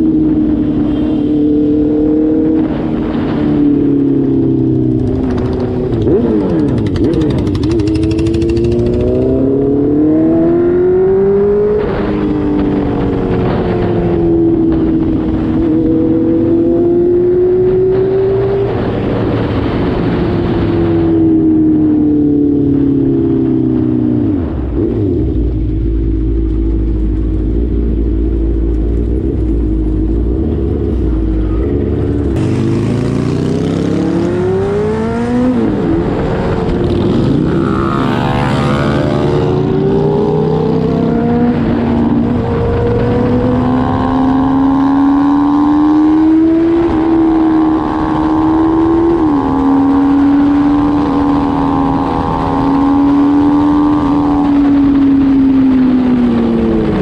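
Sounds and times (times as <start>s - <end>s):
motorcycle engine accelerating: 0.0s - 57.0s.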